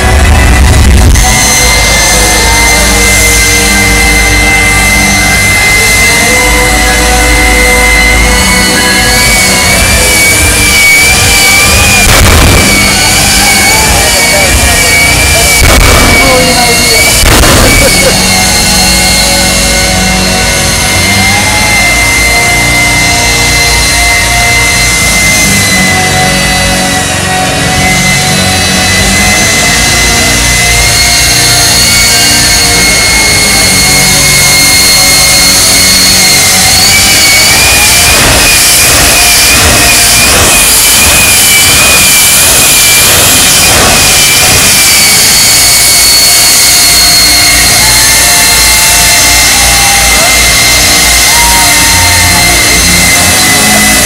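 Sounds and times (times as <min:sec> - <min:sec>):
jet engine roaring and whining: 0:00.0 - 0:54.0.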